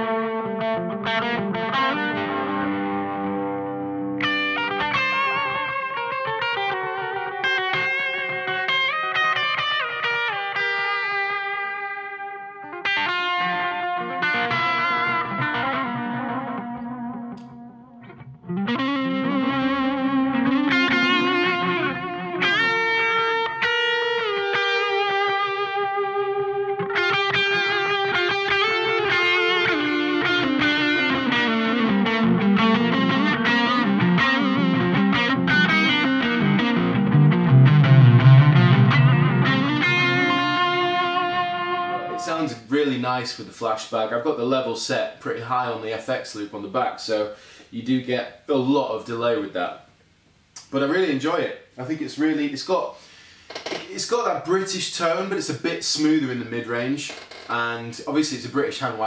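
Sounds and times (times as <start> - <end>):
overdriven electric guitar with delay: 0.0 - 42.6.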